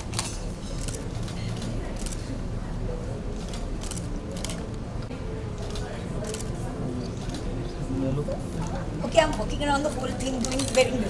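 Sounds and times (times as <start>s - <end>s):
background din of busy hall: 0.0s - 11.0s.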